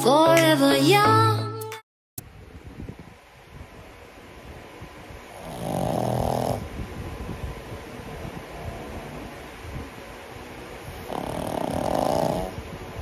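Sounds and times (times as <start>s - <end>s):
dog snoring: 5.3s - 6.7s, 8.5s - 9.3s, 10.9s - 12.6s.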